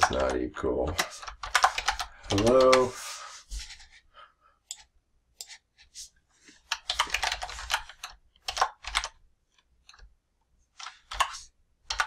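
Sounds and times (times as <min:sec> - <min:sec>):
computer keyboard typing: 0:00.0 - 0:02.9, 0:06.6 - 0:09.2, 0:10.8 - 0:12.0.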